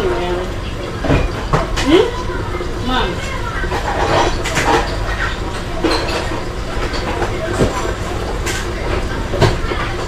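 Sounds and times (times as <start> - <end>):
dishes knocking: 3.7 - 10.0.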